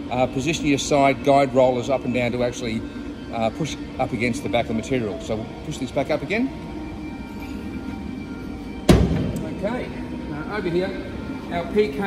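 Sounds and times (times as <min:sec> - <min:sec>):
background music: 0:00.0 - 0:12.0
loud metallic clunk: 0:08.8 - 0:09.6.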